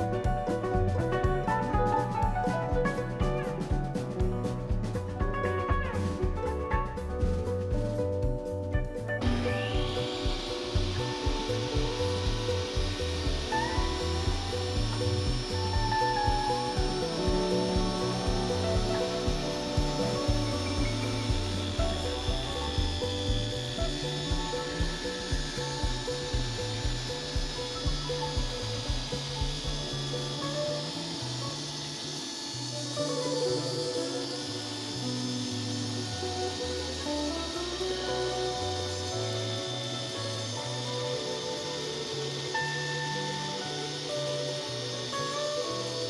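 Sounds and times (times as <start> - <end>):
background music with steady beat: 0.0 - 46.0
table saw cutting wood: 9.2 - 46.0.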